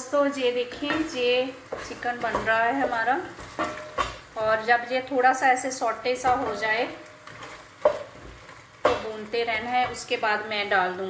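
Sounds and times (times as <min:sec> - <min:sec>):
chicken sizzling in pot: 0:00.0 - 0:11.0
spoon stirring in steel pot: 0:00.4 - 0:04.7, 0:05.9 - 0:10.5.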